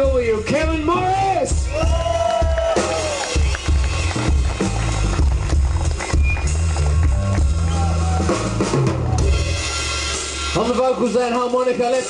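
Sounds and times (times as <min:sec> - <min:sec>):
bass guitar: 0:00.0 - 0:12.0
blues-rock band playing: 0:00.0 - 0:12.0
drum kit: 0:00.0 - 0:12.0.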